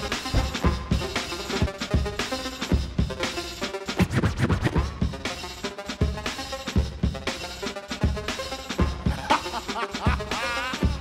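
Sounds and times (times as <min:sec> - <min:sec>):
hip hop music: 0:00.0 - 0:11.0
turntable scratches: 0:00.1 - 0:06.4, 0:07.3 - 0:11.0.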